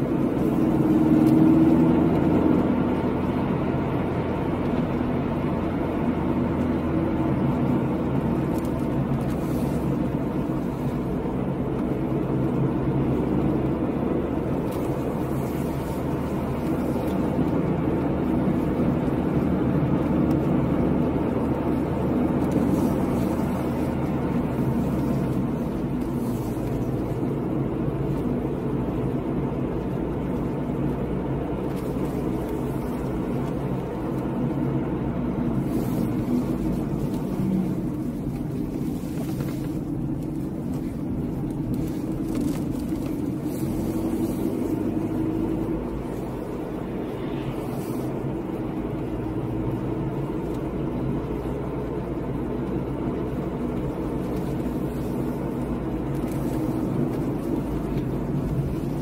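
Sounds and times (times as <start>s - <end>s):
car engine and tyre noise: 0.0s - 59.0s.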